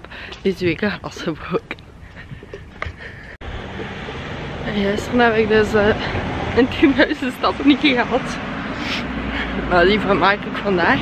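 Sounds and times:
street noise: 0.0 - 11.0
wind on microphone: 0.4 - 8.5.

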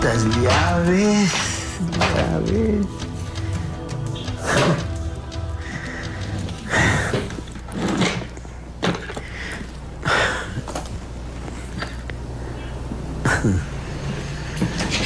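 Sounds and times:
papers rustling: 0.0 - 9.8.

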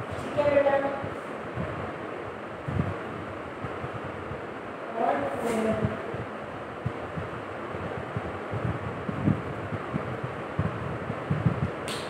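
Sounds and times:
wind hiss on microphone: 0.0 - 12.0
low wind thumps: 1.4 - 4.9, 5.5 - 12.0.

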